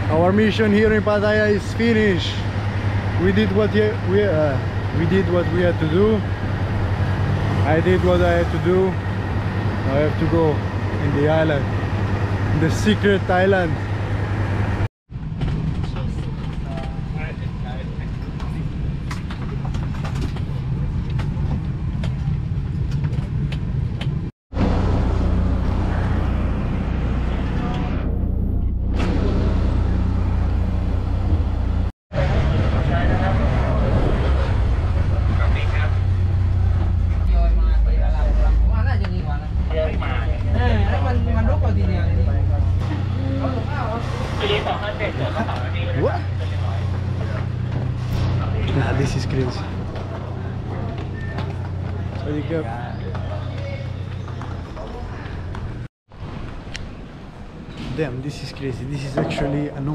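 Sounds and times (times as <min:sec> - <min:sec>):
low engine drone: 0:00.0 - 0:57.8
bus engine rumbling: 0:00.0 - 0:59.9
indistinct voices: 0:32.2 - 0:55.9.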